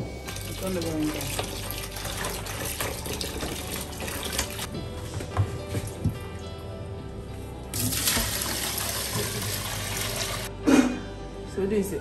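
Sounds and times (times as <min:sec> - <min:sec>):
tap water running into basin: 0:00.2 - 0:04.7, 0:07.7 - 0:10.5.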